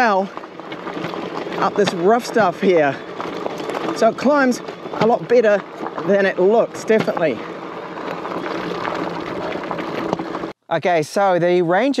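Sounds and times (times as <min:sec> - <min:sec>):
bike tyres rolling on gravel: 0:00.0 - 0:10.5.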